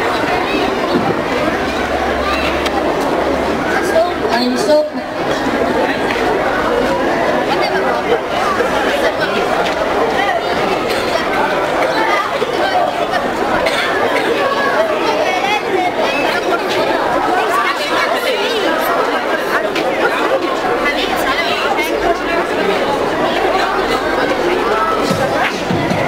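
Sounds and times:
children chattering: 0.0 - 26.0.

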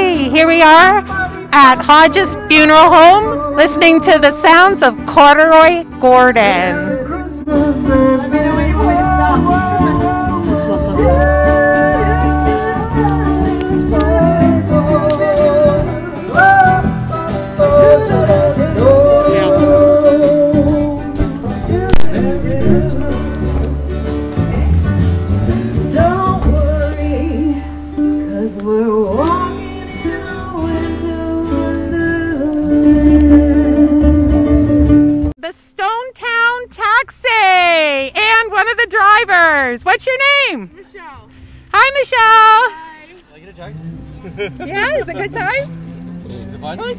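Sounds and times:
person singing: 0.0 - 5.1, 6.5 - 23.8, 25.8 - 35.1
strummed acoustic guitars: 0.0 - 35.4, 36.2 - 46.9
ukulele: 6.8 - 35.3.

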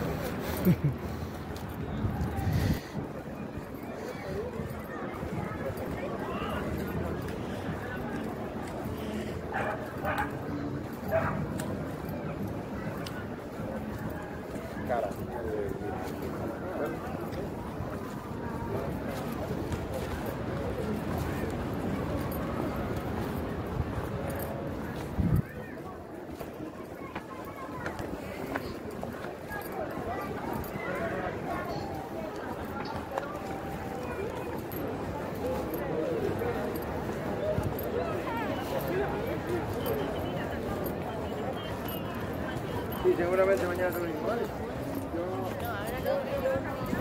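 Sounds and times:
murmur of people talking: 0.0 - 47.0
outdoor background noise: 0.0 - 47.0.

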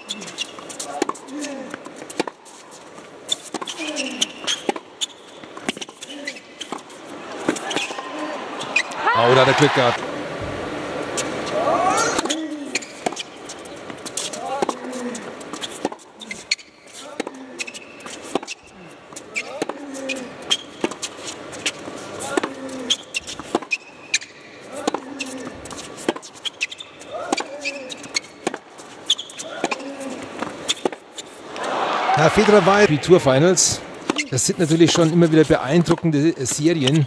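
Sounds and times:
crowd murmuring and talking: 7.0 - 12.8, 31.4 - 37.0
tennis ball bouncing on court: 23.4 - 29.8.

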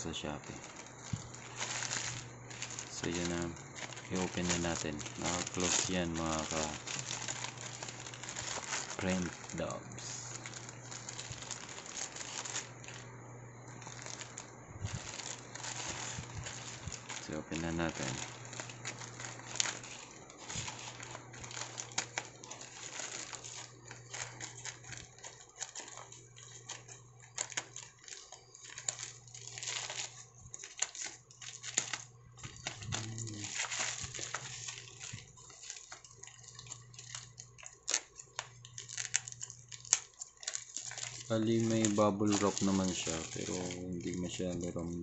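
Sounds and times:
plastic bag crinkling: 0.0 - 45.0
steady low hum: 0.0 - 45.0.

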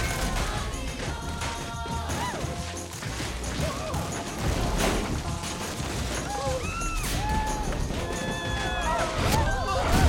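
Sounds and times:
steady music: 0.0 - 10.0.

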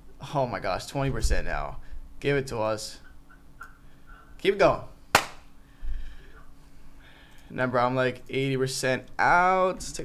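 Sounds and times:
sharp smack: 5.2 - 5.4.

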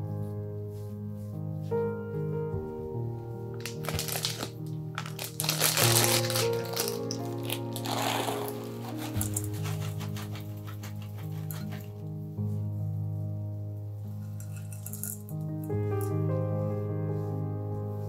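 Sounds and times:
background music: 0.0 - 18.0
plastic bag crinkling: 3.6 - 11.9, 14.4 - 15.4.

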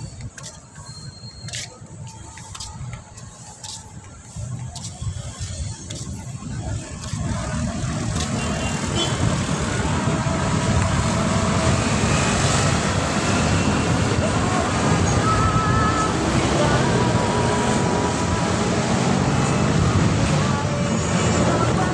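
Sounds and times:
road traffic rushing: 0.0 - 21.9.

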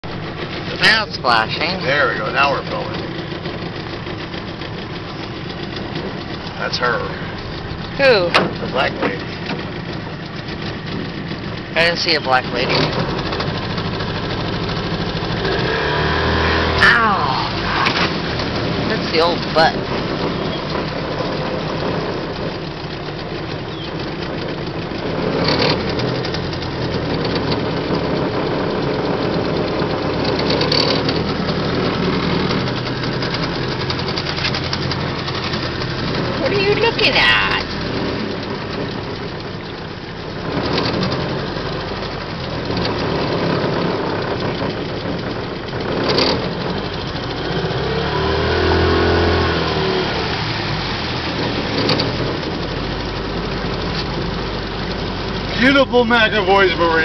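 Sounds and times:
outboard motor running: 0.0 - 57.0.

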